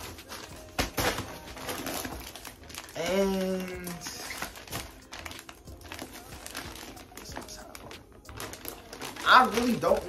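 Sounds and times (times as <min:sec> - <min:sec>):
packaging crinkling: 0:00.0 - 0:10.0.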